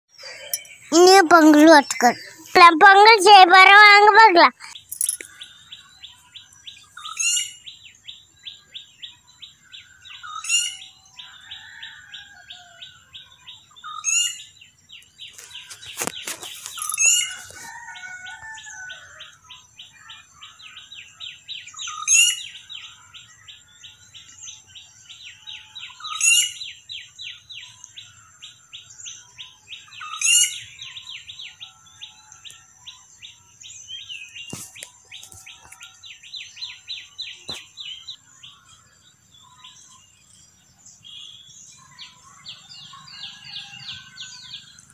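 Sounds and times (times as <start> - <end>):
birds chirping: 0.1 - 44.9
sweeping bird call: 15.3 - 23.5.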